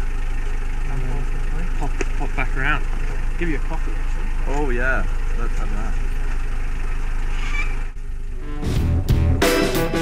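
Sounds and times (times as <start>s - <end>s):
car engine idling: 0.0s - 10.0s
music: 8.4s - 10.0s.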